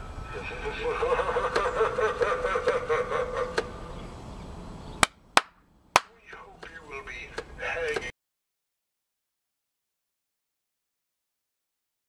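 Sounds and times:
cackling laugh from small speaker: 0.3 - 3.7.

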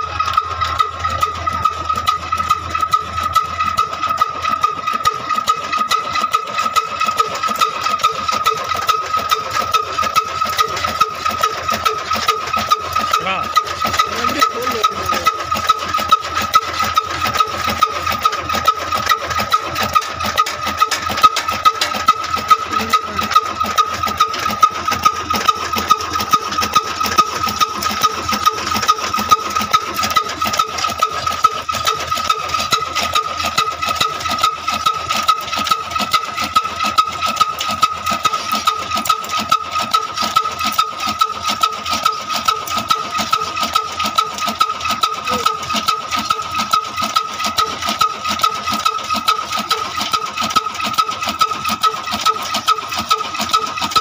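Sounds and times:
chaff cutter chopping fodder: 0.0 - 54.0
diesel engine knocking: 0.0 - 54.0.

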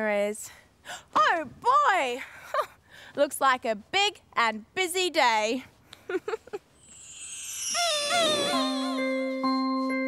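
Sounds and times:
warbling cartoon tone: 6.8 - 9.7
person laughing: 8.1 - 9.2
music: 8.2 - 10.0.

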